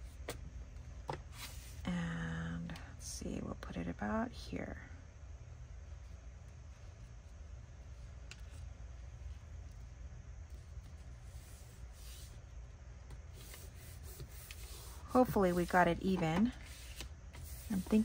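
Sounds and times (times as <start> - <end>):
low steady hum: 0.0 - 18.0
paper rustling and rubbing: 6.0 - 12.5, 16.6 - 18.0.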